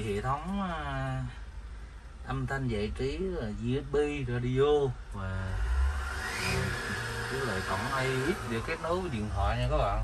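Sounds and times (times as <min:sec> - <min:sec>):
diesel engine hum: 0:00.0 - 0:10.0
short rising whine: 0:05.5 - 0:09.2.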